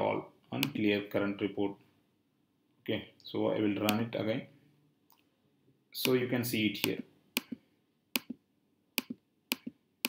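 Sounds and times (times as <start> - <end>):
computer mouse clicks: 6.0 - 6.2, 8.2 - 8.4, 9.0 - 9.8.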